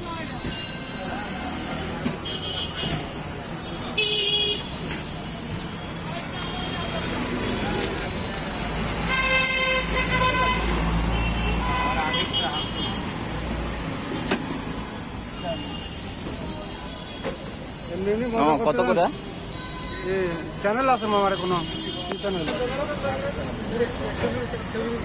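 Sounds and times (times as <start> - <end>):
background chatter: 0.0 - 25.0
vehicle horn: 9.1 - 13.0.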